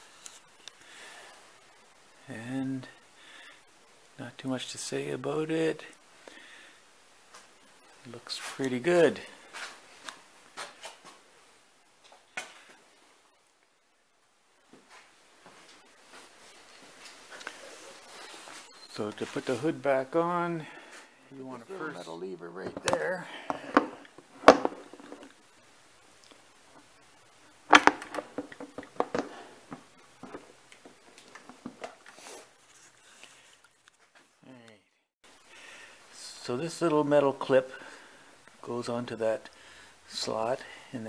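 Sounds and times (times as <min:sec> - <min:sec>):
faint room hiss: 0:00.0 - 0:41.0.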